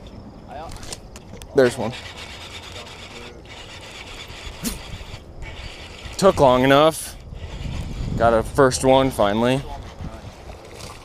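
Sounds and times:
fishing reel gears whirring: 1.4s - 10.1s.

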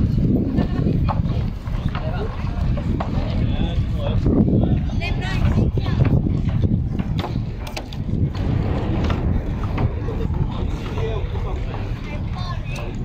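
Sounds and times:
people talking nearby: 0.0s - 13.0s
wind buffeting microphone: 0.0s - 13.0s.

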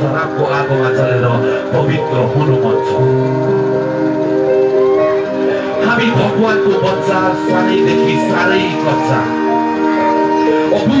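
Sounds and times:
held synth chord: 0.0s - 11.0s.

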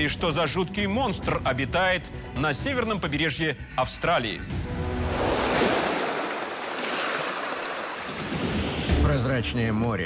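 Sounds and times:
ocean waves breaking: 4.7s - 9.0s.

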